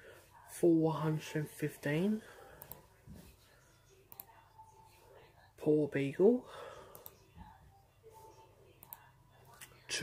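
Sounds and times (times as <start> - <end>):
faint whispered voice: 0.0 - 10.0
soft clicks: 2.6 - 2.8, 4.1 - 4.3, 6.9 - 7.2, 8.8 - 9.8.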